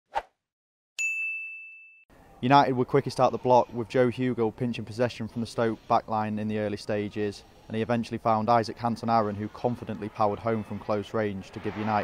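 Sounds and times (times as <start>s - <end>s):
bright chime ding: 1.0s - 2.0s.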